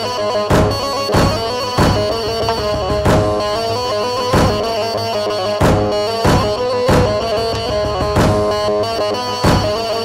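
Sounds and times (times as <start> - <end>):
electronic keyboard melody: 0.0 - 9.4
bass drone: 0.4 - 8.8
heavy drum hits: 0.5 - 8.8, 9.4 - 9.9.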